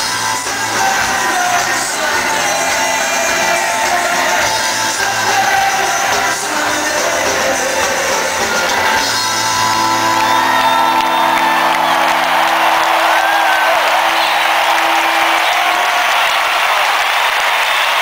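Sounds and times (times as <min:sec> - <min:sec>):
rock band sustained chord: 0:00.0 - 0:16.2
crowd cheering and whooping: 0:08.4 - 0:18.0.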